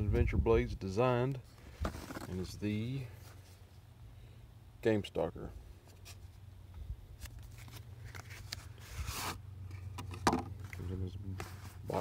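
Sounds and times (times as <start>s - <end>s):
cardboard packaging rustling: 1.6s - 2.6s, 7.2s - 9.4s
cardboard scraping slide: 1.8s - 2.4s, 7.7s - 9.4s.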